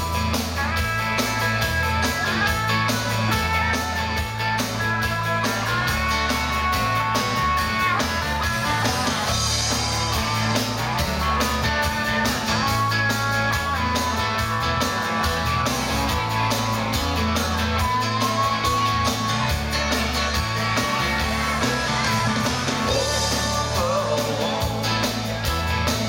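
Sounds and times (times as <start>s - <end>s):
live band playing: 0.0s - 26.0s.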